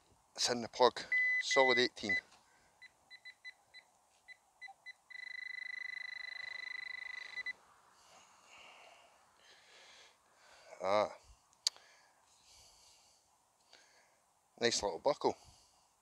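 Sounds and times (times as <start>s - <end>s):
metal detector pinpointer beeping: 1.1s - 2.2s, 2.8s - 7.6s.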